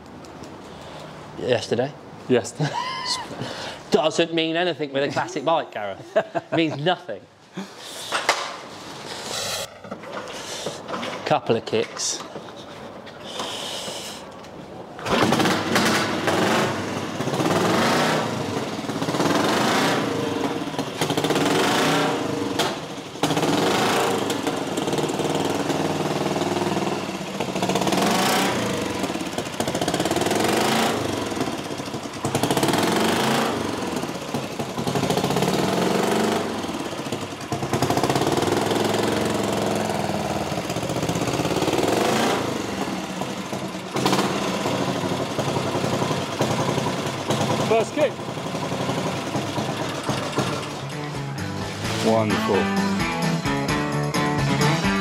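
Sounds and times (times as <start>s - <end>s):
motorcycle engine revving: 15.0s - 52.6s.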